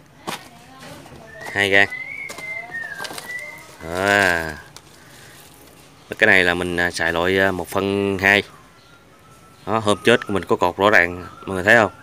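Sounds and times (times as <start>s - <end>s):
high whistle-like tone: 1.2s - 4.3s, 8.4s - 12.0s.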